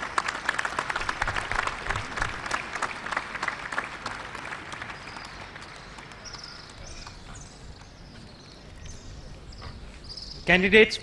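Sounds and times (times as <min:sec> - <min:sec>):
audience applauding: 0:00.0 - 0:07.9.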